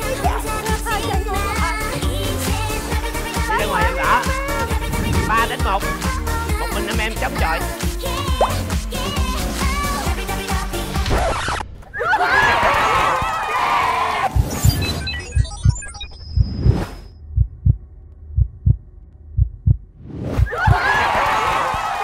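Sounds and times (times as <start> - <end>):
excited shouting voices: 3.4 - 5.9, 12.0 - 14.3, 20.5 - 22.0
heartbeat thumps: 3.8 - 6.3, 15.3 - 19.9.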